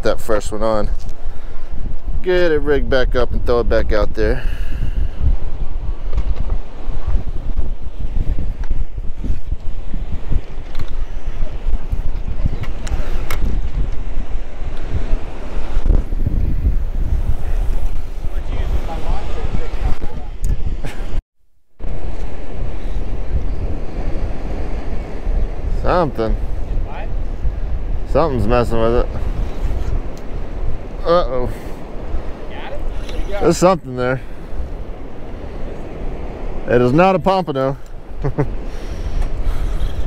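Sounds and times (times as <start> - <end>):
ocean surf: 0.0 - 21.2, 21.8 - 40.0
wind buffeting microphone: 0.0 - 21.2, 21.8 - 40.0.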